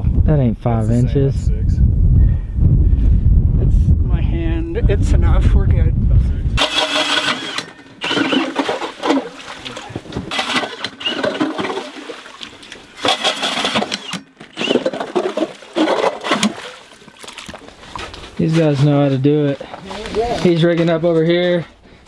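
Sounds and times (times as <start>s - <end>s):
wind rumbling on microphone: 0.0s - 6.7s, 9.7s - 10.4s
ice auger grinding: 6.6s - 9.7s, 10.3s - 16.6s.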